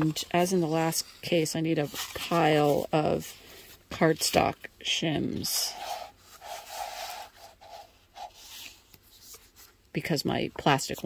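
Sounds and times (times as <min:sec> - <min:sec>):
cardstock sheets sliding and rustling: 0:00.0 - 0:04.4, 0:05.3 - 0:09.8.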